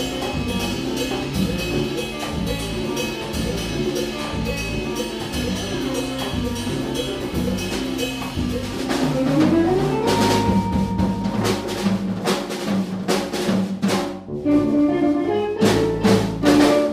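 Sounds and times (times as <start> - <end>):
latin jazz band playing: 0.0 - 16.9.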